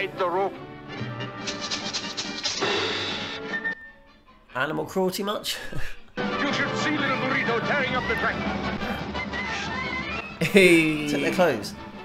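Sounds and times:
cartoon soundtrack music: 0.0s - 12.0s.

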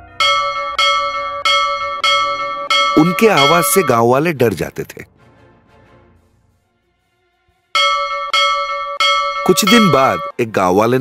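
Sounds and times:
temple bell ringing: 0.2s - 4.2s, 7.8s - 10.4s.

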